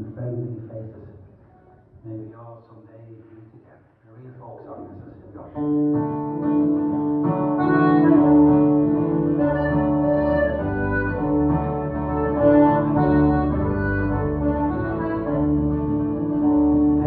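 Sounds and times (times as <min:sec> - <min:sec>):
guitars: 0:05.4 - 0:17.0
accordion melody: 0:06.0 - 0:17.0
steady bass: 0:07.6 - 0:17.0.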